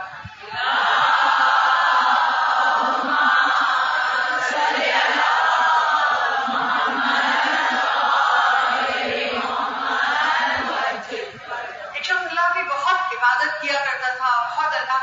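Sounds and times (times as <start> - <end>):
congregation chanting in unison: 0.0 - 12.0.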